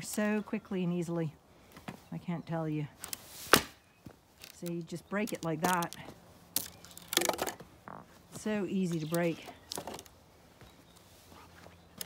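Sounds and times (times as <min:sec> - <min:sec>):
stick snapping underfoot: 0:03.0 - 0:03.8, 0:04.4 - 0:07.6.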